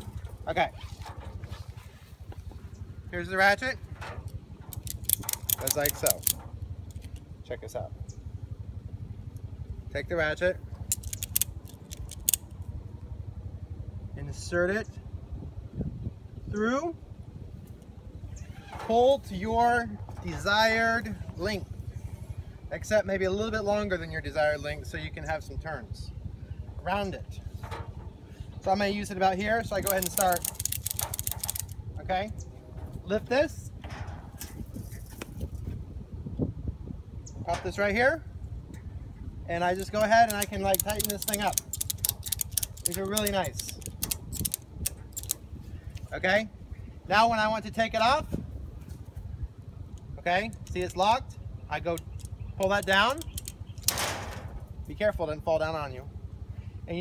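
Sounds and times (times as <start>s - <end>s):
low steady rumble: 0.0s - 57.0s
vehicle engine idling: 0.0s - 57.0s
ratchet clicks: 4.6s - 7.2s, 10.9s - 12.6s, 29.6s - 31.8s, 39.7s - 45.4s, 50.5s - 51.0s, 51.9s - 54.0s.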